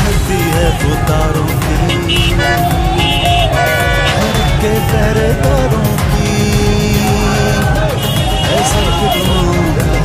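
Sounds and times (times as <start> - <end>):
rally song with heavy beat: 0.0 - 10.0
road traffic: 0.0 - 10.0
car horns honking: 0.1 - 5.1, 7.1 - 10.0.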